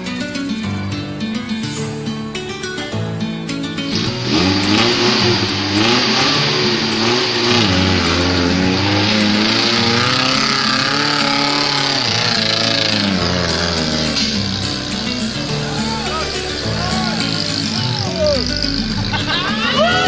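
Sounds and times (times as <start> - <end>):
off-road vehicle engine revving: 3.9 - 20.0.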